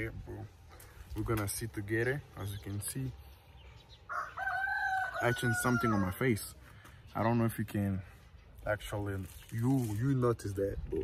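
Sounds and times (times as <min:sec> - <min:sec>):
rooster crowing: 0:04.1 - 0:06.2.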